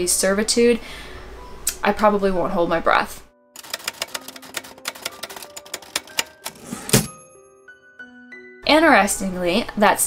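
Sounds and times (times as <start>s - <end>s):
typewriter keys clacking: 3.6s - 7.2s
typewriter strike: 3.6s - 7.2s.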